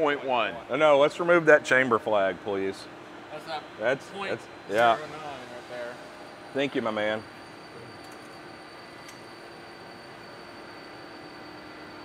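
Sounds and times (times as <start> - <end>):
faint high whine: 3.3 - 12.0.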